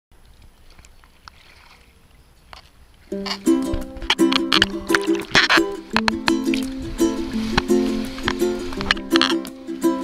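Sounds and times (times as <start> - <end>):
small splashes: 0.2 - 10.0
water lapping: 0.2 - 10.0.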